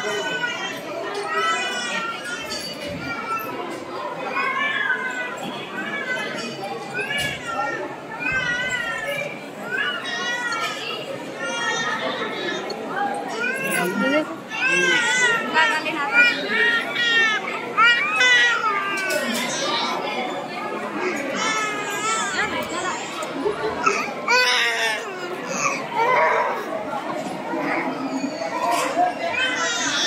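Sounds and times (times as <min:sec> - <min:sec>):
babble of voices: 0:00.0 - 0:30.0
children calling out: 0:00.0 - 0:30.0
people chattering: 0:00.0 - 0:30.0.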